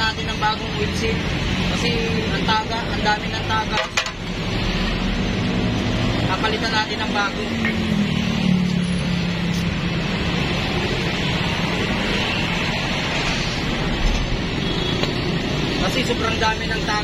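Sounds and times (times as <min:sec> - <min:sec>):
street traffic: 0:00.0 - 0:17.0.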